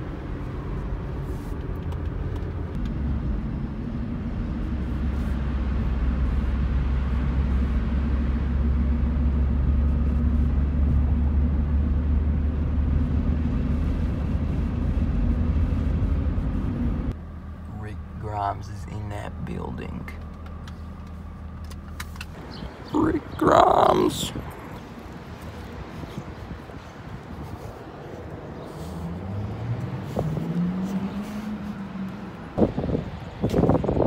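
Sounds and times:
car engine and road drone: 0:00.0 - 0:34.0.

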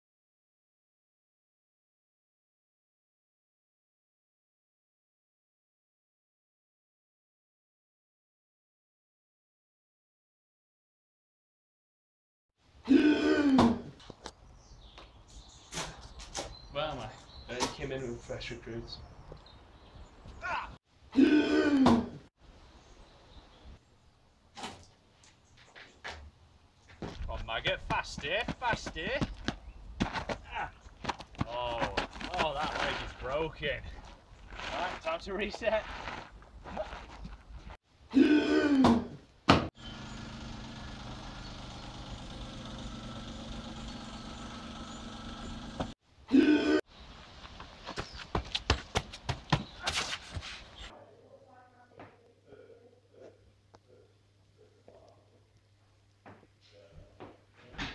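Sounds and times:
quick footsteps on stone paving: 0:25.2 - 0:37.8, 0:47.2 - 0:50.9.

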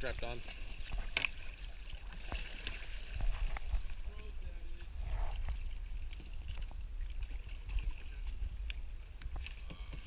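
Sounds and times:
paddle splashes: 0:00.0 - 0:10.0
low microphone rumble: 0:03.1 - 0:10.0.

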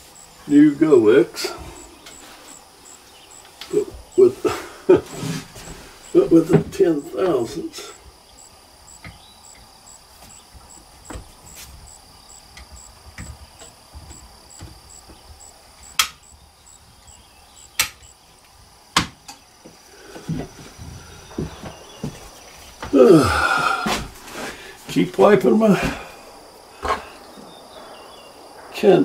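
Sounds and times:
insect chirping: 0:00.0 - 0:29.0.

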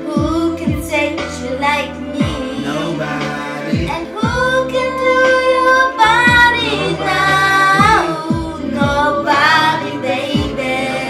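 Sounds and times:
woman singing wordless notes: 0:00.0 - 0:03.0, 0:03.8 - 0:11.0
r and b backing track: 0:00.0 - 0:11.0
deep kick drum thuds: 0:00.2 - 0:01.0, 0:02.2 - 0:02.6, 0:03.7 - 0:04.7, 0:06.1 - 0:09.3, 0:10.3 - 0:10.8.

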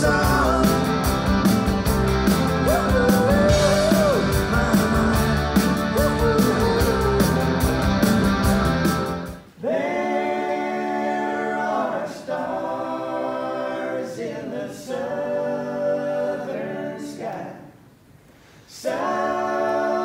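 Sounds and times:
men singing in harmony unaccompanied: 0:00.0 - 0:01.1, 0:02.6 - 0:07.7, 0:09.6 - 0:17.6, 0:18.8 - 0:20.0
lead vocal singing: 0:00.0 - 0:01.5, 0:02.1 - 0:08.2, 0:09.4 - 0:17.8, 0:18.6 - 0:20.0
electric guitars: 0:00.0 - 0:09.4
drum kit with cymbal beat: 0:00.0 - 0:09.5.

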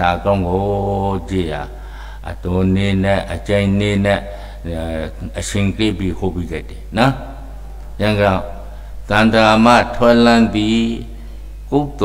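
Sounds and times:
person chanting into microphone: 0:00.0 - 0:12.0.

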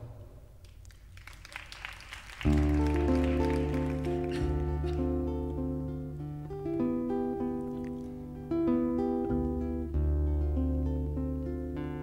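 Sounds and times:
acoustic guitar playing: 0:02.4 - 0:12.0.

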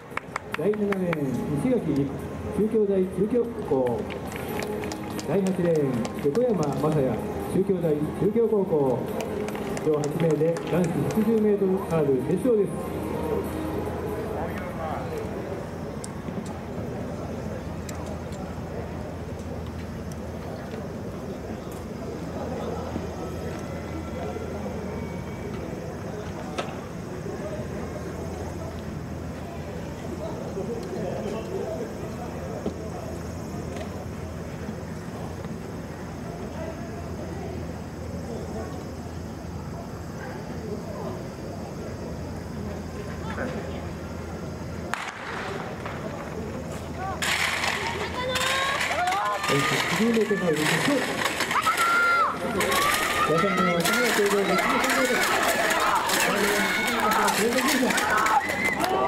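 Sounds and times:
distant indistinct voices: 0:00.0 - 0:59.0
steady low hum: 0:00.0 - 0:59.0
starting gun shot with echo: 0:44.9 - 0:45.6.

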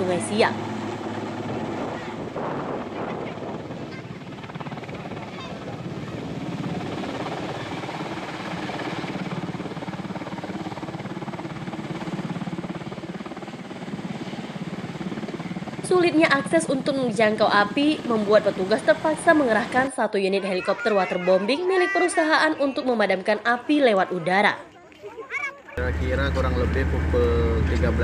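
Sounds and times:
helicopter rotor and engine: 0:00.0 - 0:28.0.

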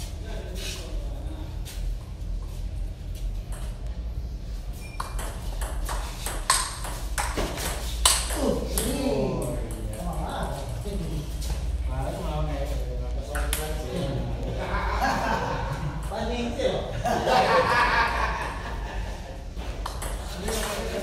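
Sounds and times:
men talking: 0:08.3 - 0:21.0.

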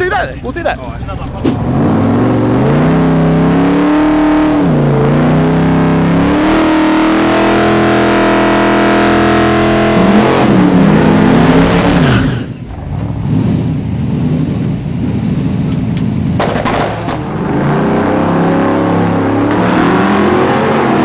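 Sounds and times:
race car engine revving hard: 0:01.1 - 0:14.5, 0:16.6 - 0:21.0.

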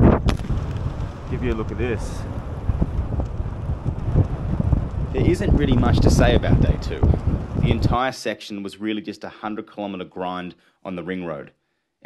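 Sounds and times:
wind buffeting microphone: 0:00.0 - 0:08.0.

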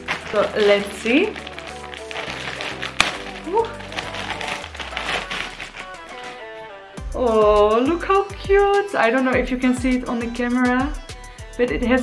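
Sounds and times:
plastic bag rustling and crinkling: 0:00.0 - 0:06.6
background music: 0:00.0 - 0:12.0.

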